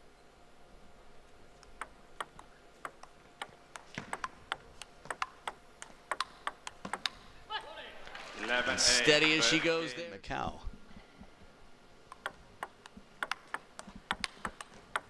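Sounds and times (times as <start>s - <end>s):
table tennis ball clicking: 1.6s - 7.3s, 12.1s - 15.0s.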